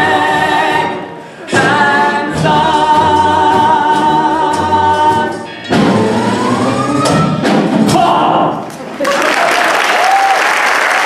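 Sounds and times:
two men singing a duet: 0.0 - 5.5
musical accompaniment: 0.0 - 8.8.

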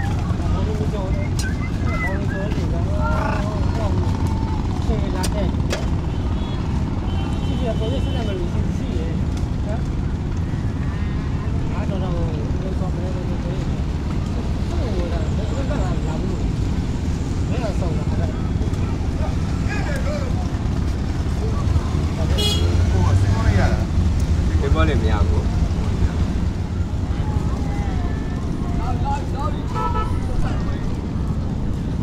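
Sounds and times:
voices talking: 0.0 - 32.0.

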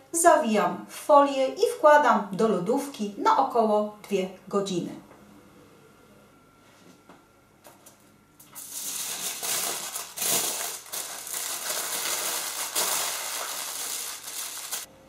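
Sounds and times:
aluminium foil crinkling: 8.5 - 14.9.

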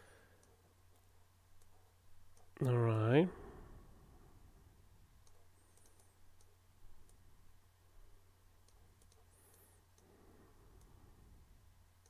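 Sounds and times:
low steady hum: 0.0 - 12.0
computer mouse clicks: 0.3 - 2.8, 5.2 - 7.2, 8.6 - 10.1, 10.7 - 11.0.

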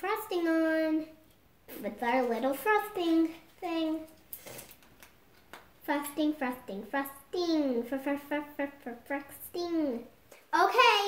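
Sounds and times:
girl speaking: 0.0 - 4.2, 5.8 - 11.0
paper rustling: 2.1 - 5.1.

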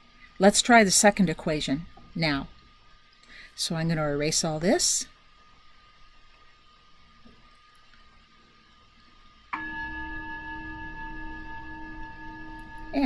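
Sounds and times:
cell phone bell-like ringtone: 9.6 - 13.0.

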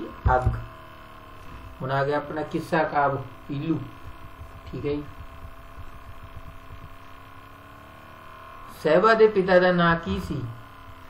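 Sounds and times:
man speaking: 0.0 - 0.7, 1.8 - 4.0, 4.6 - 5.2, 8.7 - 10.6
faint steady tones: 0.0 - 11.0
steady background hum: 0.0 - 11.0.

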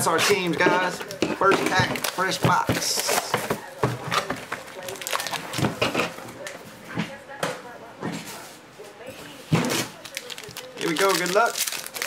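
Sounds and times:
foil card pack rustling: 4.6 - 5.6, 10.0 - 12.0.

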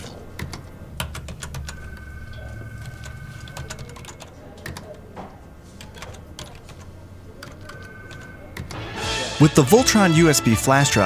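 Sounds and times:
computer keyboard key clicks: 3.0 - 5.0.

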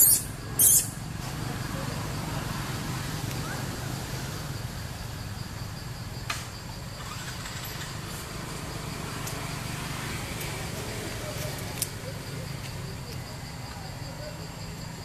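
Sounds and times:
outdoor background hum: 0.0 - 15.0.

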